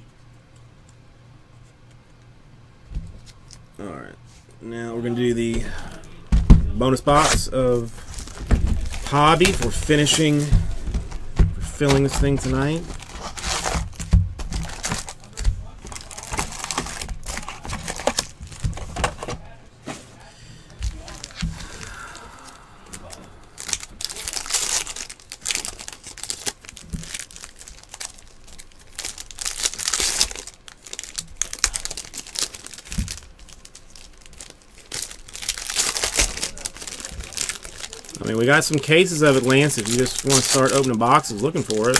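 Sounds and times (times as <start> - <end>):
foil wrappers crinkling and tearing: 6.8 - 19.6, 20.8 - 41.9.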